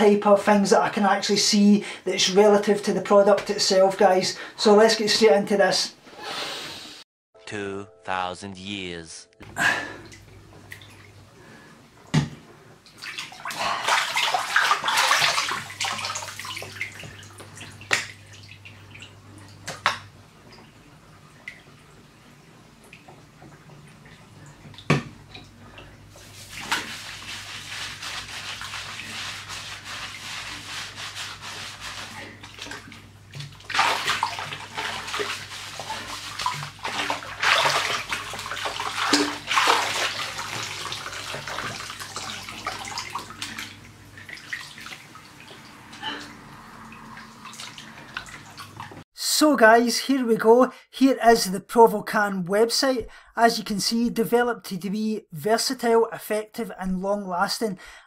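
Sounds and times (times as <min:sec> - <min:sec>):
water splashing in a bathtub: 0:09.6 - 0:49.1
hair scrubbing noise: 0:26.2 - 0:32.8, 0:33.7 - 0:43.3.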